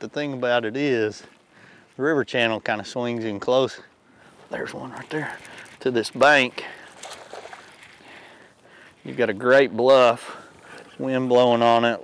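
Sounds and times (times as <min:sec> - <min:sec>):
wind: 0:00.0 - 0:12.0
choppy water lapping boat: 0:04.3 - 0:09.5.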